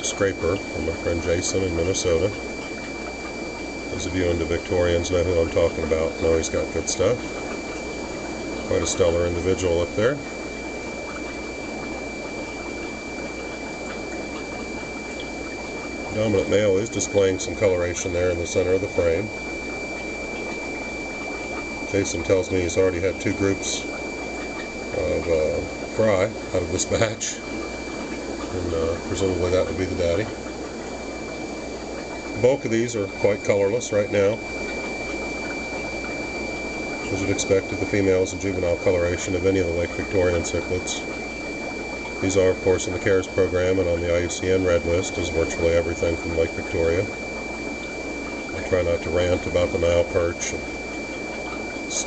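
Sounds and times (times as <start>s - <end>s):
thin high tone: 0.0s - 52.0s
water bubbling from aquarium filters: 0.0s - 52.0s.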